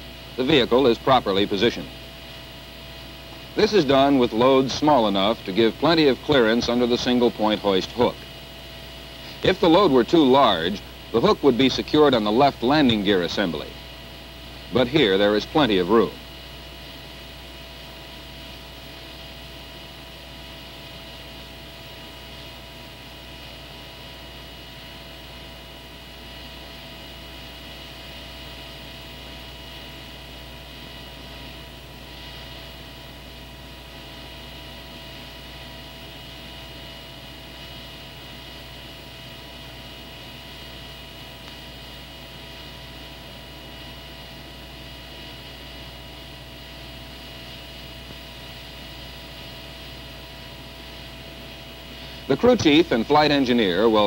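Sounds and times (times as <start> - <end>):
steady hum: 0.0 - 54.0.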